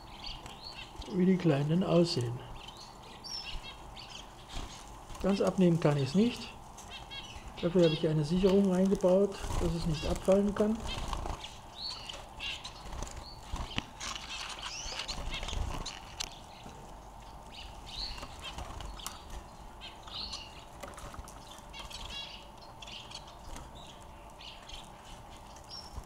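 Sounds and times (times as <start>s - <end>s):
finches chirping: 0.0s - 26.0s.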